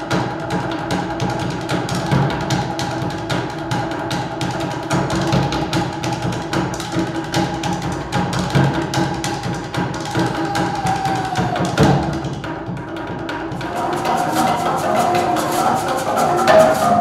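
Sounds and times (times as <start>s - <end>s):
sticks on wooden percussion: 0.0s - 17.0s.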